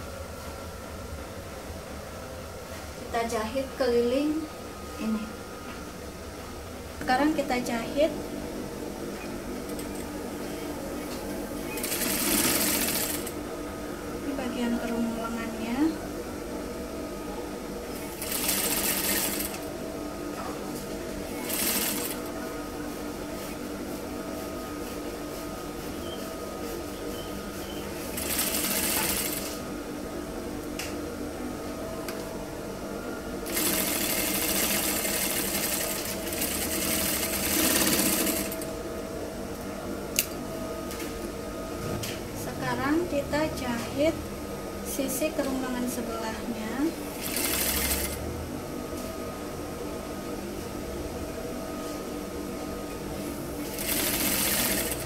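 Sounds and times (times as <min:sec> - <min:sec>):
steady machine hum: 0:00.0 - 0:55.0
sewing machine stitching: 0:11.6 - 0:13.3, 0:18.0 - 0:19.6, 0:21.3 - 0:22.2, 0:28.0 - 0:29.6, 0:33.5 - 0:38.6, 0:47.2 - 0:48.2, 0:53.7 - 0:55.0.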